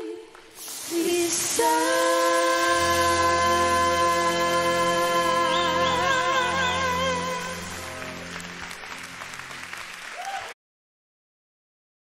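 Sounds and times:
person singing: 0.0s - 8.1s
music with long held chord: 0.9s - 10.2s
audience applause and cheering: 5.2s - 10.6s.

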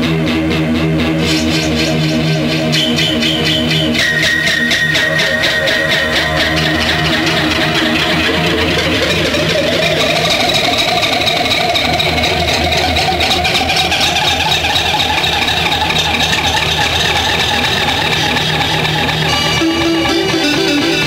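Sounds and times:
fluttering engine-like drone: 1.0s - 21.0s.

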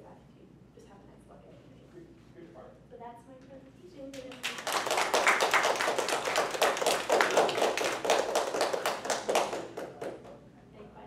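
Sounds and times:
audience applauding: 4.3s - 10.3s.

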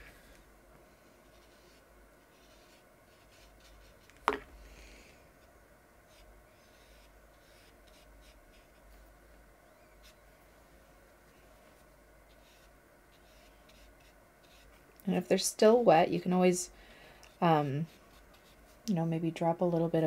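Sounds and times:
brush scratching on paper: 0.9s - 4.1s, 6.0s - 9.0s, 9.9s - 10.3s, 11.3s - 14.8s, 17.3s - 18.8s.

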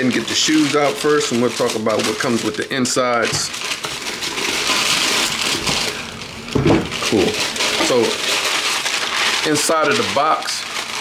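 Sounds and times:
tissue paper crinkling: 0.0s - 11.0s.

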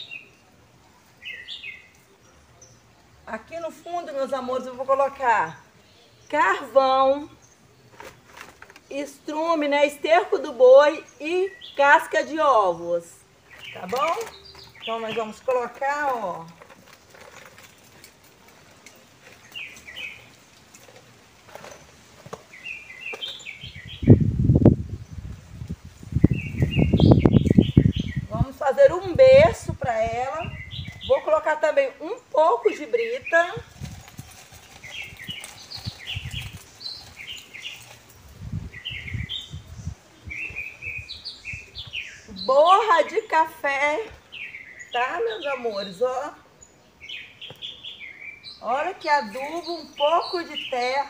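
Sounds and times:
hands rustling and scraping soil: 6.3s - 9.6s, 13.4s - 24.0s, 32.7s - 39.5s, 48.8s - 51.0s
small bird chirping: 13.4s - 18.0s, 26.0s - 28.4s, 30.1s - 31.4s, 32.1s - 43.3s.

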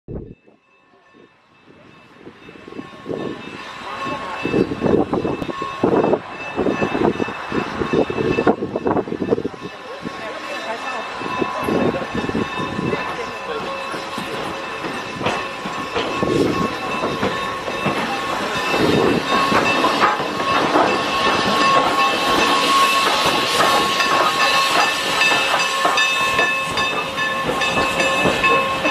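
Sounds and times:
train wheels on rails: 0.7s - 28.9s
steam locomotive puffing exhaust: 13.9s - 28.9s.

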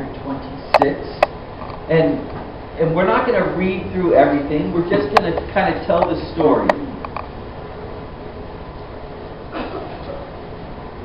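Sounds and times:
room noise rumble and hiss: 0.0s - 11.0s.

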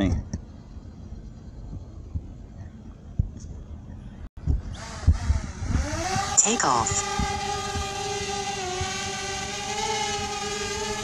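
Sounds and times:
wind buffeting microphone: 0.0s - 11.0s
drone propeller whine: 3.7s - 11.0s.

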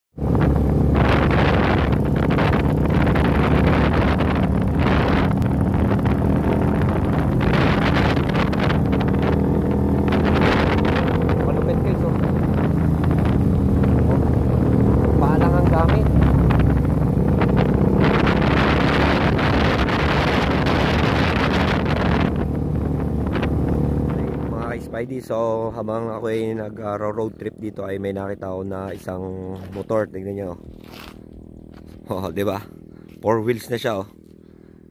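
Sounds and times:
wind buffeting on microphone: 0.2s - 33.1s
motorcycle engine running: 0.2s - 34.9s.

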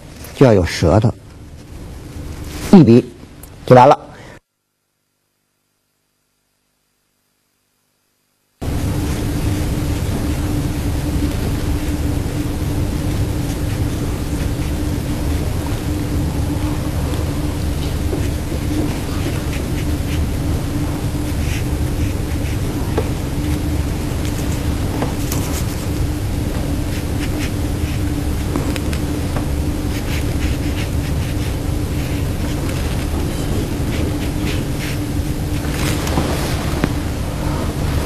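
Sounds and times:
low hum: 8.6s - 38.0s
ink brush on paper: 16.5s - 25.9s, 26.5s - 35.1s.

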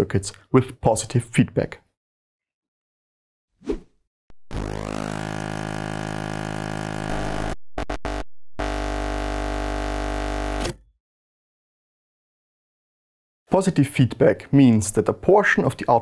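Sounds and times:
buzzing synthesizer tone: 4.3s - 10.7s
stuttering synth pulses: 4.4s - 10.4s.

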